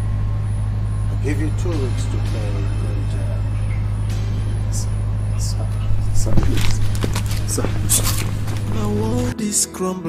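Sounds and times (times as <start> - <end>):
engine humming: 0.0 - 9.4.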